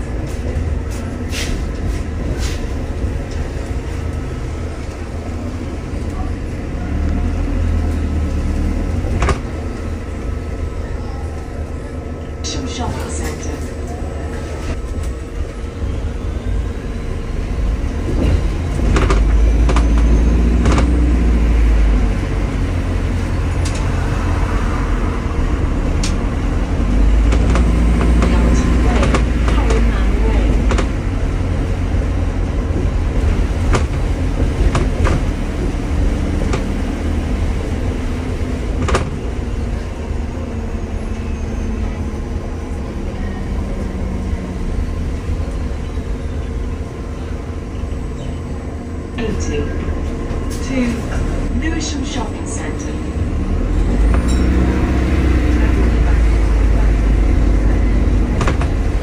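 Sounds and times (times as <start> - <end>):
bus engine and road rumble: 0.0 - 59.0.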